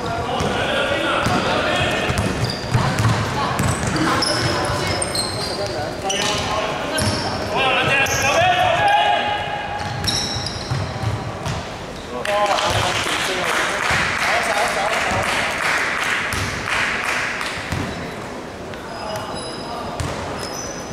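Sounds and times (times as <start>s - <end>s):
players' voices echoing: 0.0s - 20.4s
sneaker squeaks: 1.2s - 8.4s, 9.7s - 12.2s, 17.6s - 20.9s
basketball bouncing on wood floor: 2.1s - 4.6s.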